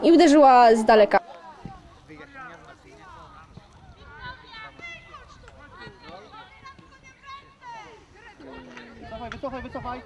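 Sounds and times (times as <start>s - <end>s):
voices calling and shouting: 0.0s - 10.0s.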